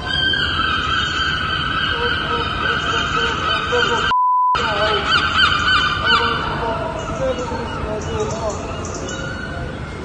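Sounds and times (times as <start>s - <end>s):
gull calling: 0.0s - 9.9s.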